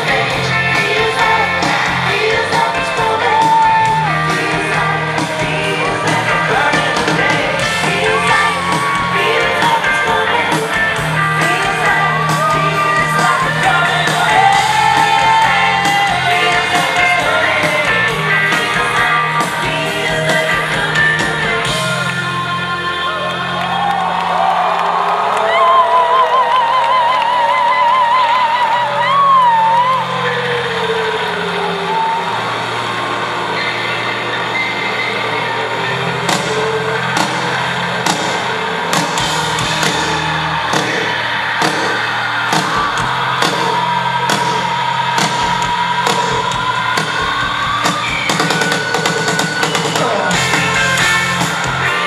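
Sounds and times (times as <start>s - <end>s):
sustained bass notes: 0.0s - 24.0s, 28.9s - 52.0s
live rock band: 0.0s - 24.6s, 33.5s - 52.0s.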